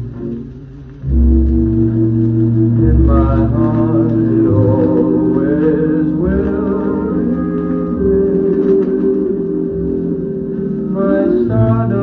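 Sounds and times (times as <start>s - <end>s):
big band orchestra on old record: 0.0s - 12.0s.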